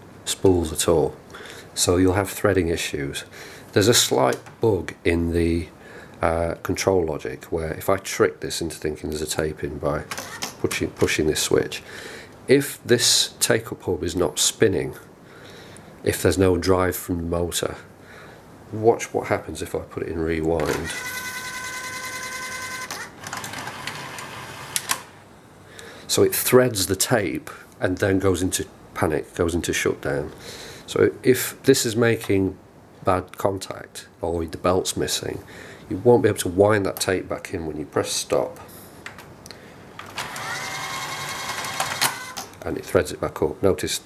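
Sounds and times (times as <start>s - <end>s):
mechanical whirring: 20.7s - 25.2s, 40.1s - 42.5s
mechanism clicks: 22.8s - 25.2s
motor whine: 40.2s - 42.4s.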